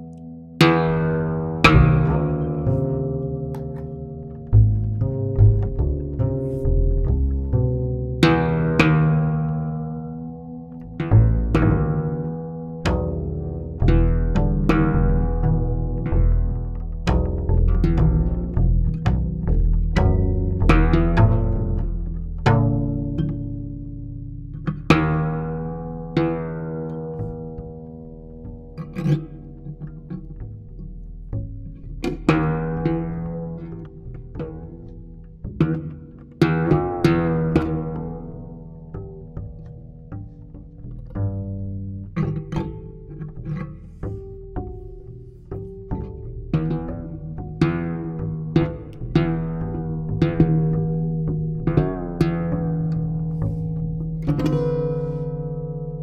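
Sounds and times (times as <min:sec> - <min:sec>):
double bass sustained tones: 0:00.0 - 0:56.0
plucked guitar notes: 0:00.0 - 0:56.0.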